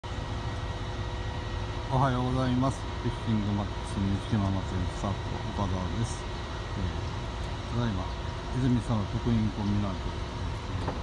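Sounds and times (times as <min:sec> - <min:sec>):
steady mechanical hum: 0:00.0 - 0:11.0.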